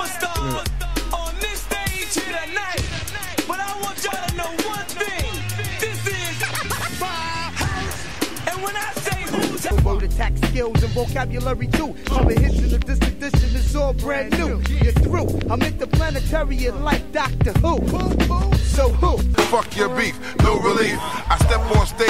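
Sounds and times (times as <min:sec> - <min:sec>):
hip hop music with rapping: 0:00.0 - 0:22.0
heavy bass line: 0:00.4 - 0:01.7, 0:09.7 - 0:19.4.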